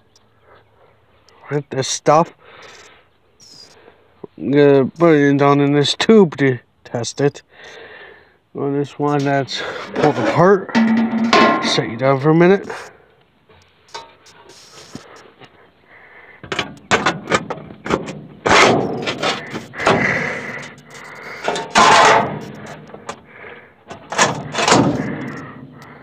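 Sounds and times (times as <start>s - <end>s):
metal clanks and scrapes: 9.2s - 12.1s, 13.9s - 15.0s, 16.5s - 23.2s, 23.9s - 25.8s.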